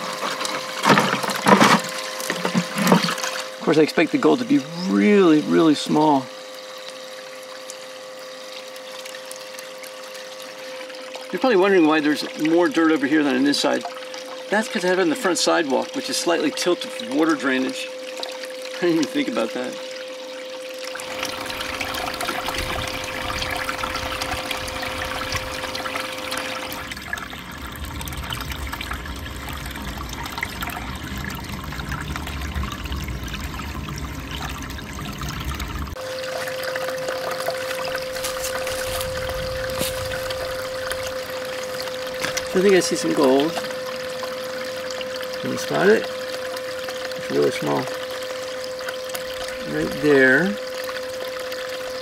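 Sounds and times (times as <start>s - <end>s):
electric water pump hum: 0.0s - 52.0s
water running through sluice: 0.0s - 52.0s.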